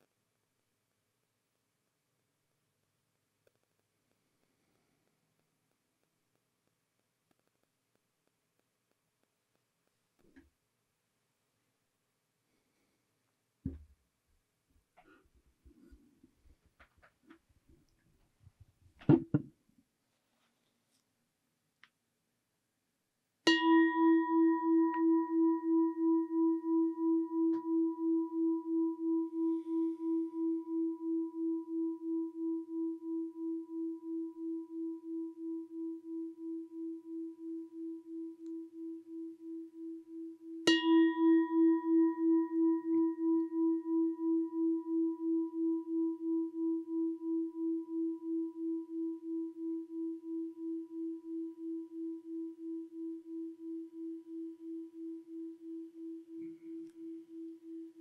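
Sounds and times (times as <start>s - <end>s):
singing bowl ringing: 23.5s - 58.0s.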